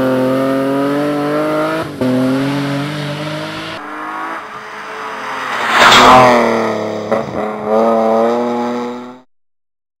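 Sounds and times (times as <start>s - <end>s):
car engine driving away: 0.3s - 9.2s.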